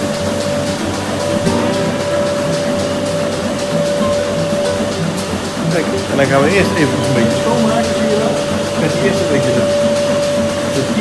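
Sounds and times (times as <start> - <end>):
high machine whine: 0.0 - 11.0
vacuum machine hum: 0.0 - 11.0.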